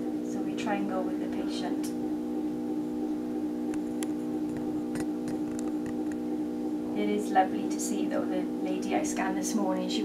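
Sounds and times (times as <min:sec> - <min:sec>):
mri scanner humming: 0:00.0 - 0:10.0.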